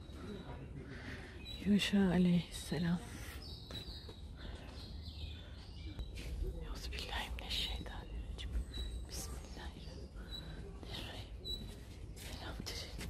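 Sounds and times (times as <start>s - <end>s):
whispered speech: 5.8s - 13.0s.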